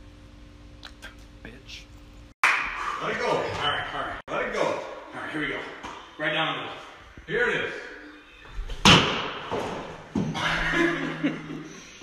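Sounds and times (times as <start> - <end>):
baseball smacking with echo: 2.4 - 2.8, 8.8 - 9.8.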